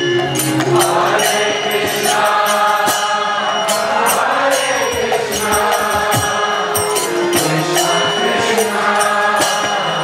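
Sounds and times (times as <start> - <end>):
hand cymbals clashing: 0.0 - 10.0
harmonium chords: 0.0 - 10.0
drum beating: 0.2 - 10.0
voices chanting: 0.7 - 10.0.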